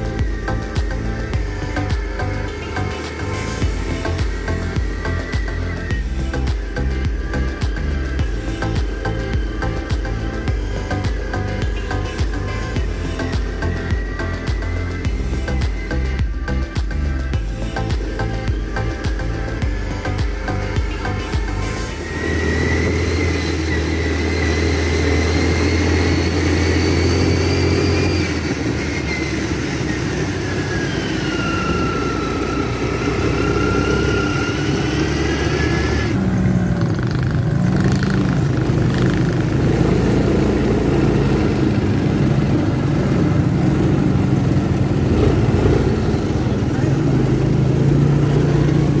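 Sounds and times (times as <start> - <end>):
music: 0.0 - 29.0, 38.0 - 49.0
quad bike engines revving: 0.0 - 49.0.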